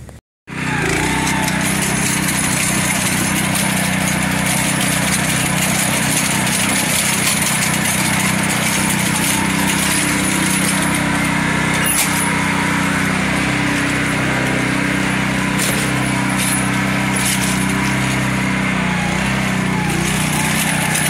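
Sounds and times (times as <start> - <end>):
small engine running steadily: 0.0 - 21.0.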